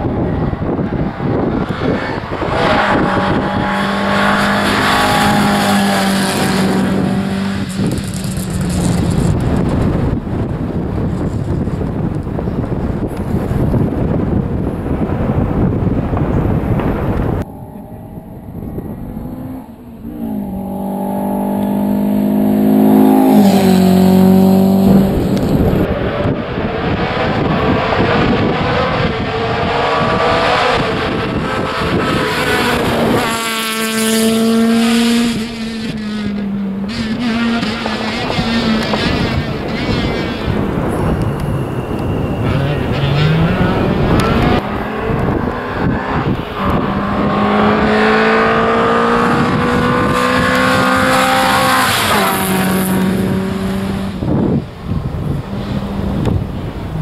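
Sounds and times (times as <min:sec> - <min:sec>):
rally car engines revving: 0:00.0 - 0:57.0.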